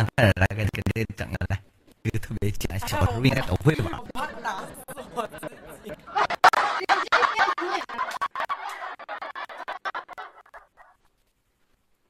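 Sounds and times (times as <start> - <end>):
woman giggling: 5.1 - 10.9.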